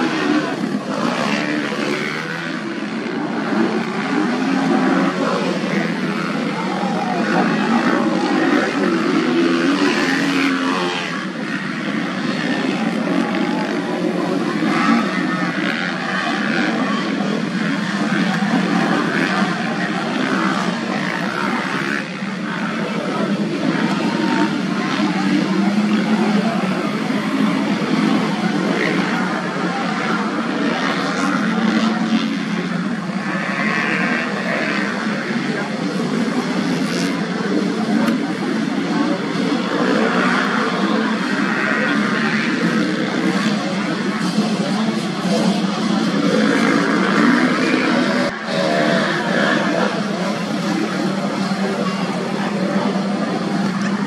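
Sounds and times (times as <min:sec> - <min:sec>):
motocross bike engines running: 0:00.0 - 0:54.0.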